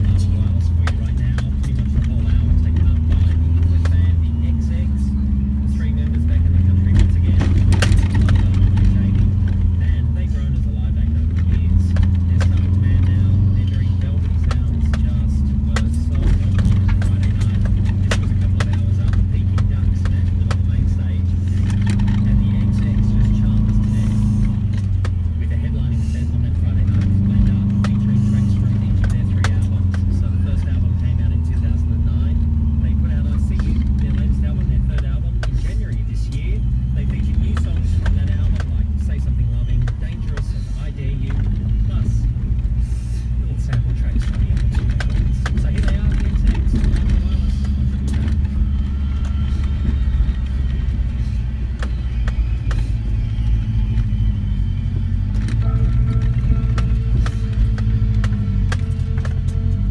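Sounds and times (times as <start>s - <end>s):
car engine drone in cabin: 0.0s - 59.9s
clicks and knocks from rough road: 0.0s - 59.9s.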